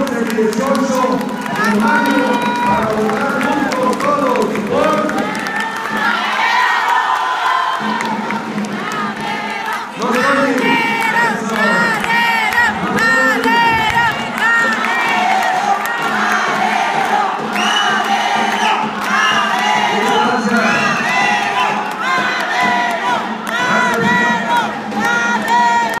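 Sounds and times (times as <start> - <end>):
crowd shouting and cheering: 0.0 - 26.0.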